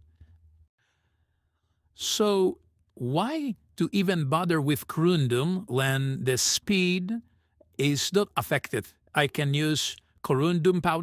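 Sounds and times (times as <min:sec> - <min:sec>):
faint breath: 0:00.0 - 0:01.9.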